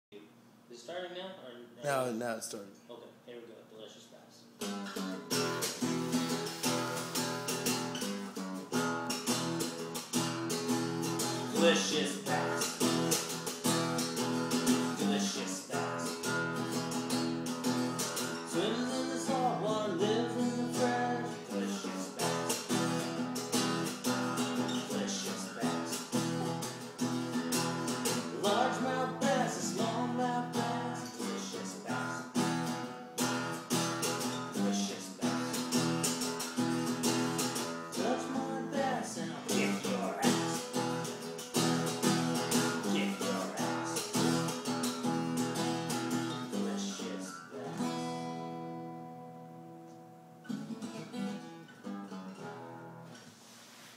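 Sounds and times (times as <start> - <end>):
acoustic guitar strumming: 4.6 - 53.2.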